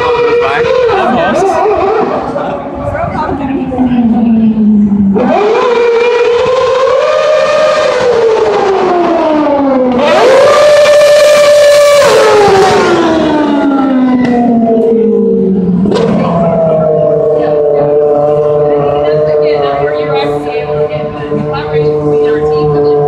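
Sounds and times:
race car engine at high revs: 0.0 - 23.0.

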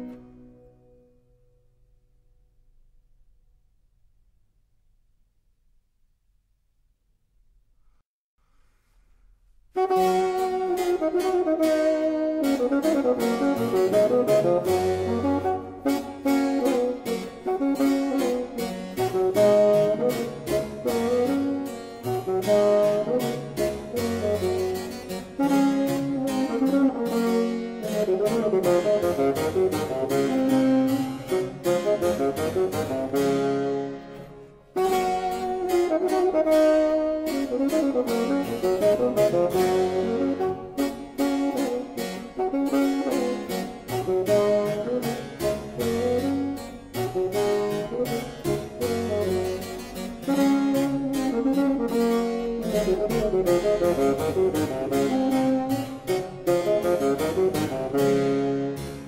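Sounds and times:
bassoon melody: 9.8 - 59.0.

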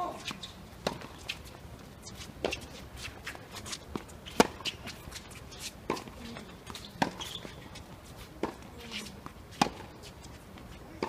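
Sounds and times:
racket striking tennis ball: 0.0 - 1.5, 2.4 - 7.3, 8.4 - 9.9
footsteps and shoe scuffs on court: 0.0 - 11.0.

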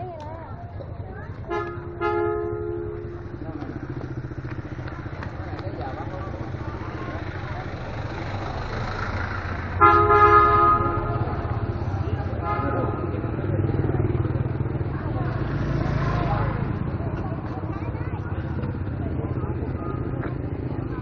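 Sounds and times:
low engine rumble: 0.0 - 21.0
motorbike horn honking: 1.4 - 3.4, 9.8 - 11.7, 12.3 - 13.4.

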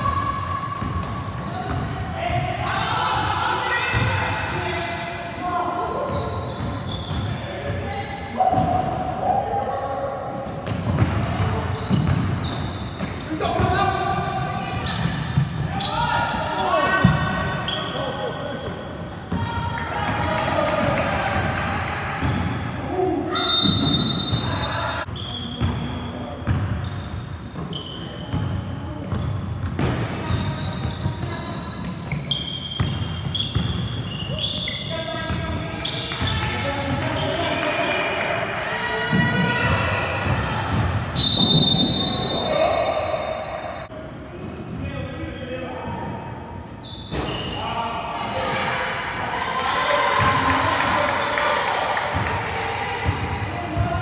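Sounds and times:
shoe squeaks: 0.1 - 1.8, 3.8 - 9.8, 10.9 - 18.6, 21.6 - 22.2, 22.9 - 38.0, 40.6 - 43.9, 44.6 - 49.8, 52.6 - 54.0.

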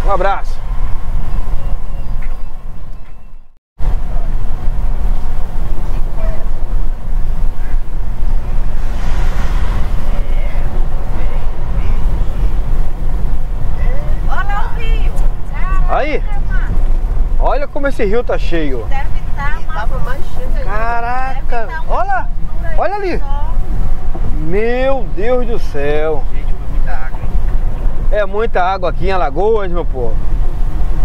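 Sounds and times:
car engine and tyres rumbling: 0.0 - 31.0.

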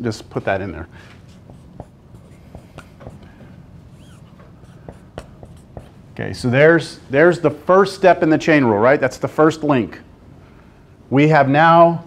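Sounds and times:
low room noise: 0.0 - 12.0
pen writing on a board: 1.3 - 6.0
light pen taps: 4.8 - 5.9.

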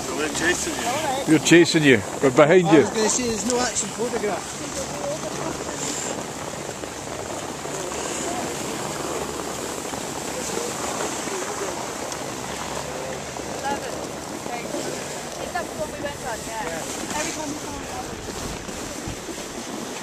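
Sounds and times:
faint voices: 0.0 - 19.4
skis sliding over snow: 0.0 - 20.0
wind on the microphone: 0.0 - 20.0.

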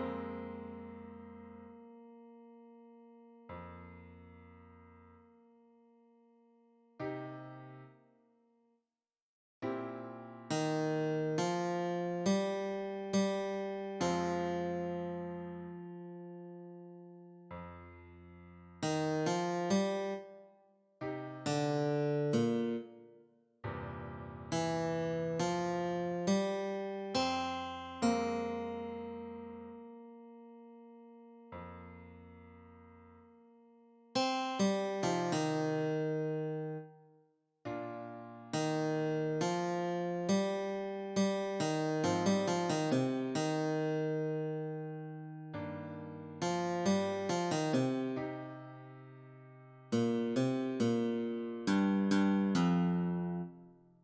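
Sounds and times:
computer guitar notes: 18.8 - 20.3, 21.2 - 23.0, 24.5 - 29.6, 34.2 - 36.9, 38.5 - 49.1, 49.9 - 53.6.

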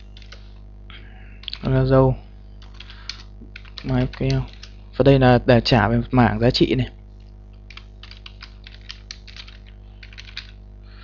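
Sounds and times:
computer keyboard typing: 0.0 - 0.4, 1.4 - 1.8, 2.6 - 4.8, 7.7 - 10.6
low electrical hum: 0.0 - 11.0.

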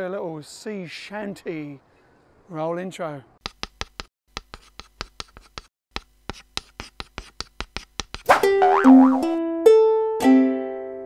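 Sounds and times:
chalk writing on a blackboard: 3.4 - 8.3.

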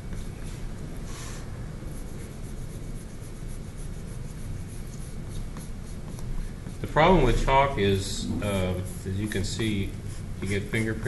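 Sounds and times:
eraser rubbing on paper: 2.0 - 7.8, 8.6 - 11.0.

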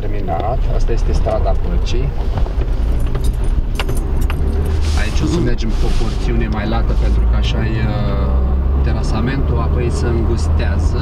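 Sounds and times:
engine and tyre rumble: 0.0 - 11.0
light clicks and rattles: 2.4 - 5.3.

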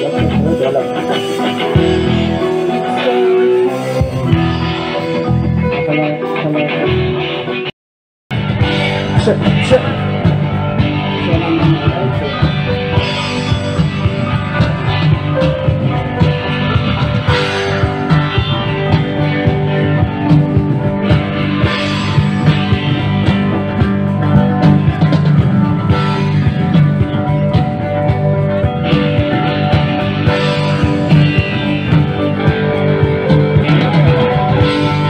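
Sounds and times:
drum kit: 0.0 - 7.7, 8.3 - 35.0
electric guitars: 0.0 - 7.7, 8.3 - 35.0.

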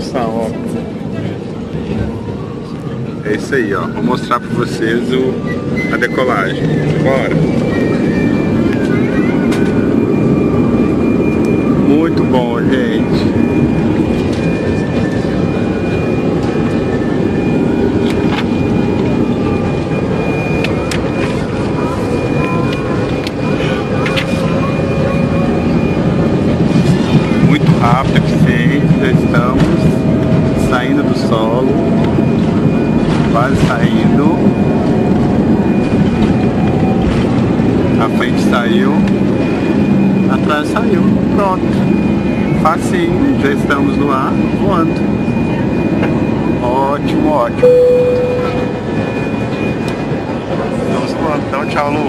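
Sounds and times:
jet engines roaring in cabin: 0.0 - 52.0.

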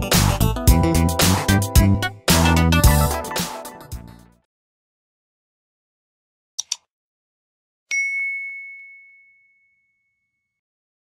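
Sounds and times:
notification bell ding: 7.9 - 10.5.

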